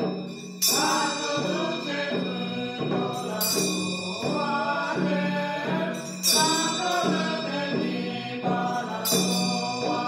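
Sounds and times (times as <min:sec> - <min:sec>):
monotone chanting: 0:00.0 - 0:10.0
ringing instrument strikes: 0:00.0 - 0:10.0.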